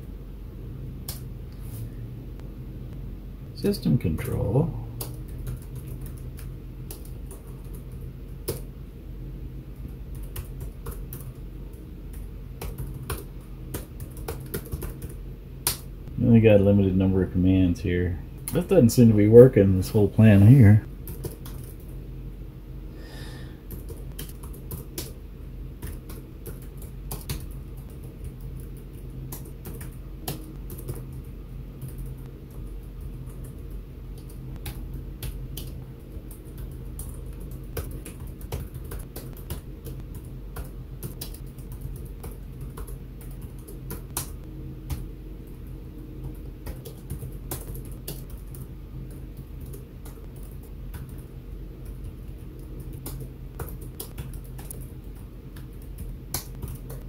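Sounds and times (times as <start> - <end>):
steady low hum: 0.0 - 57.0
typing on computer keyboard: 5.0 - 8.7, 9.9 - 11.4, 12.1 - 15.8, 21.0 - 22.0, 23.7 - 25.2, 25.8 - 45.0, 46.2 - 57.0.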